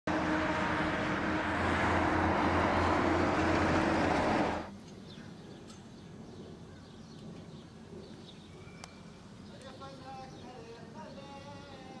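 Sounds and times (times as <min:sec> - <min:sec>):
vehicle engine and road noise: 0:00.0 - 0:06.6.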